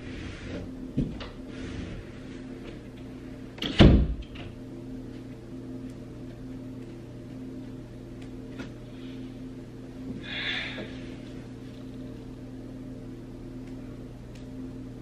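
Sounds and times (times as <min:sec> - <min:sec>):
low room hum: 0:00.0 - 0:15.0
door thumping shut: 0:03.6 - 0:04.2.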